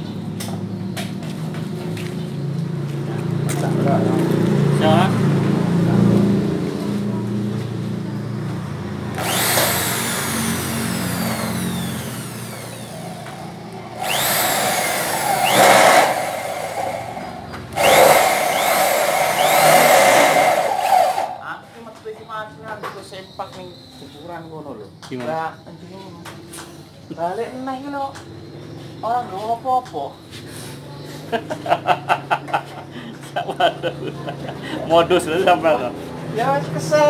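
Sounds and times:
electric power drill spinning: 9.1 - 21.4.

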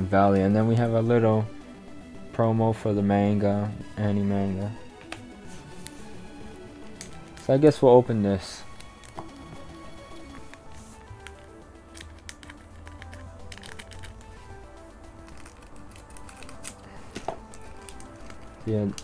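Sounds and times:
quiet background music: 0.0 - 19.0
foil pack crinkling: 15.2 - 19.0
scissors snipping: 15.2 - 19.0.

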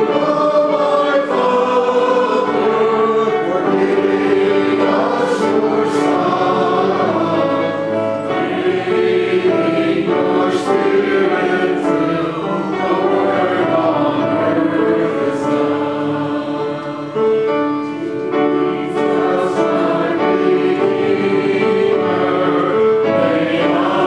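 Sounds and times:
choir singing a hymn: 0.0 - 24.0.

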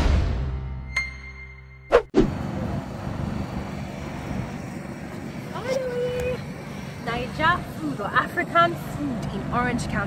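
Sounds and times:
low engine rumble: 2.3 - 10.0.

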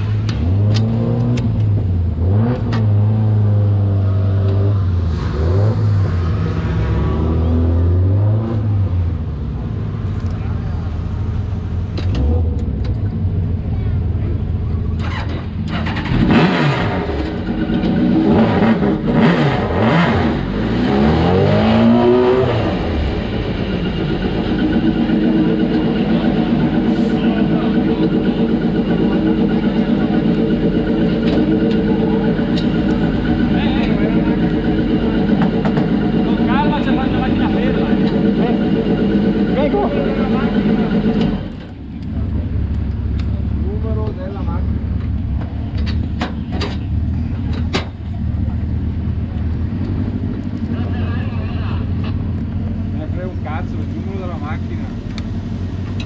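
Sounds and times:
motorcycle engine idling and revving: 0.0 - 56.0.

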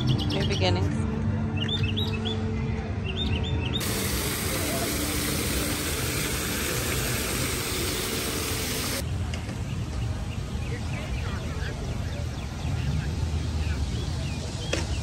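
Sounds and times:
water falling down a fountain: 3.8 - 9.0.

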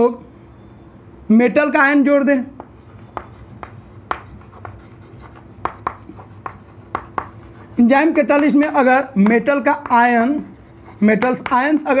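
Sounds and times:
chalk writing on chalkboard: 2.6 - 12.0.

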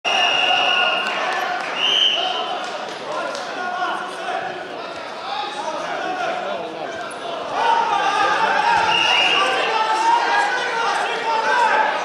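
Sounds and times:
referee's whistle blasts: 0.1 - 1.2, 1.8 - 2.4, 8.8 - 9.7
people shouting: 7.5 - 12.0.

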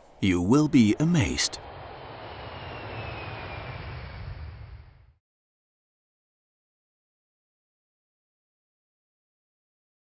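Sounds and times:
jet engine rumble: 0.0 - 5.2
high whine falling in pitch: 0.9 - 5.1.

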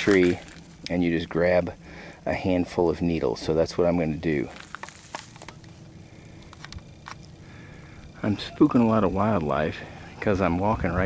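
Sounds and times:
footsteps in dry leaves: 0.0 - 0.9, 4.4 - 7.3.

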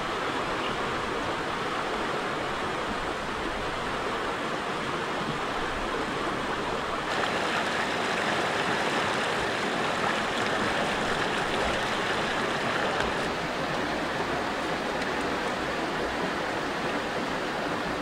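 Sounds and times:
river rushing over rocks: 0.0 - 18.0.

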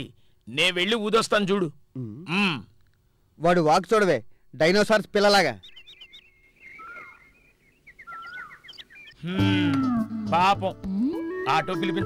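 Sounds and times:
small birds chirping: 4.3 - 12.0
background music: 9.2 - 12.0.

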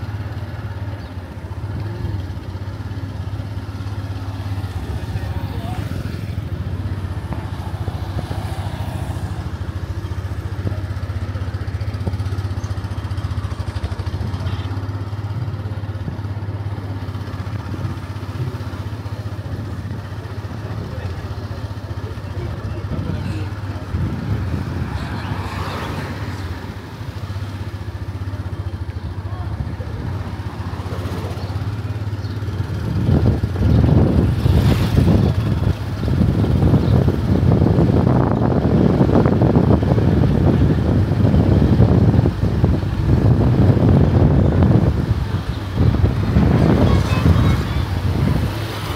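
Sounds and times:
motorcycle engine running: 0.0 - 48.9
wind buffeting microphone: 4.3 - 48.9.

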